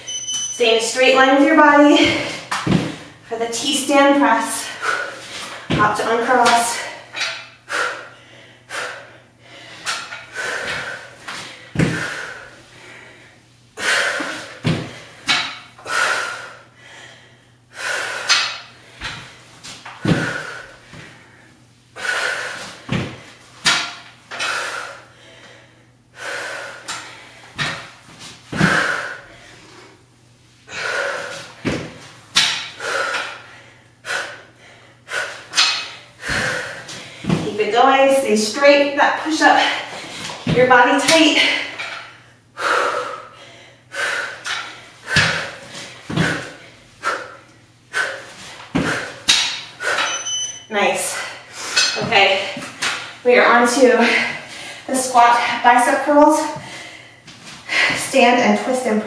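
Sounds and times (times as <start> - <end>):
dumbbells thudding on mat: 2.0 - 3.1, 11.8 - 12.2, 14.6 - 15.6, 19.9 - 21.1, 31.6 - 33.3, 35.5 - 37.6, 44.4 - 46.6
woman breathing hard: 4.5 - 5.7, 6.7 - 19.4, 20.0 - 27.9, 28.5 - 37.4, 41.3 - 50.3, 54.0 - 55.6, 56.5 - 58.1.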